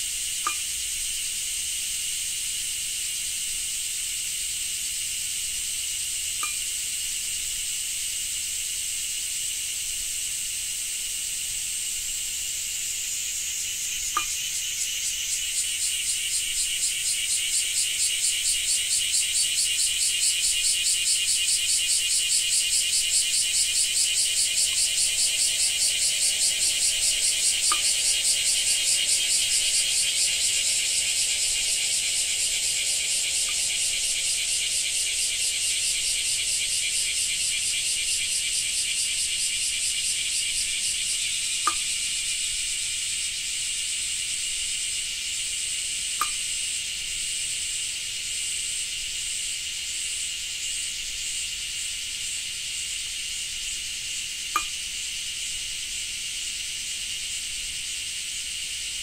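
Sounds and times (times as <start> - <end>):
cicadas buzzing: 0.0 - 59.0.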